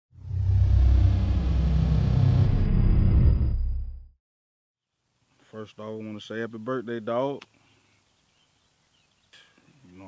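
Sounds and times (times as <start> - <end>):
deep cinematic rumble: 0.1 - 4.2
high tone sliding down: 0.2 - 4.1.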